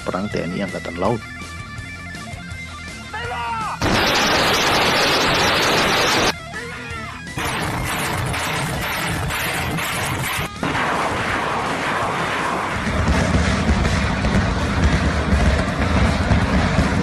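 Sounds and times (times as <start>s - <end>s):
rocket launches roaring: 3.8s - 6.3s, 7.4s - 17.0s.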